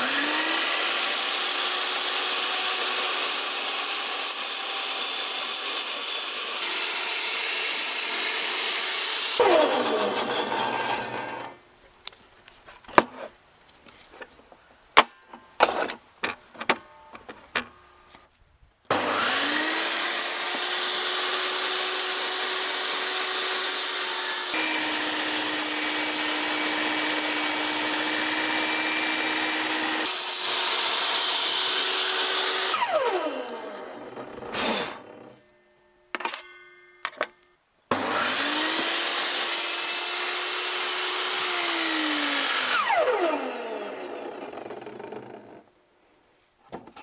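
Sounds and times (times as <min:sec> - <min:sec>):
table saw running and cutting: 0:00.0 - 0:11.6, 0:18.9 - 0:35.4, 0:37.9 - 0:45.5
table saw winding down: 0:00.0 - 0:11.6, 0:18.9 - 0:35.4, 0:37.9 - 0:45.6.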